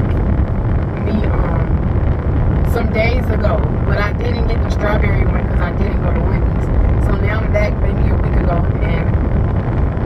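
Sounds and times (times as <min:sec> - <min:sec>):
low rumble in car cabin: 0:00.0 - 0:10.0
woman talking: 0:01.0 - 0:01.9, 0:02.6 - 0:09.2.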